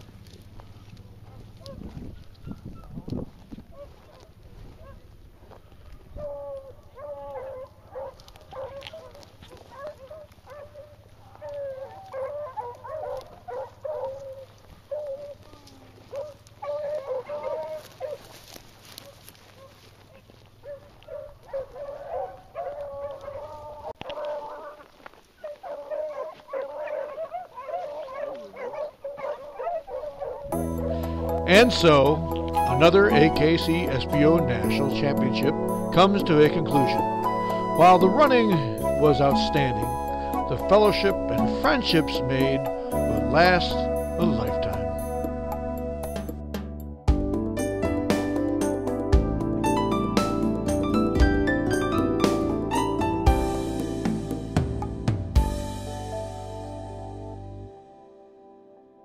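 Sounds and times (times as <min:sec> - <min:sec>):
pack of dogs baying: 0:00.0 - 0:46.5.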